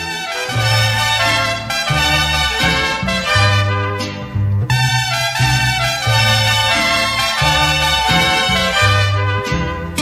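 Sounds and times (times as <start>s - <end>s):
mariachi band playing: 0.0s - 10.0s.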